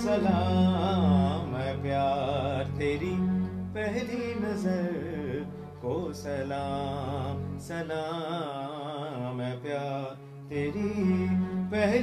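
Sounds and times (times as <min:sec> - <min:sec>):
man singing: 0:00.0 - 0:12.0.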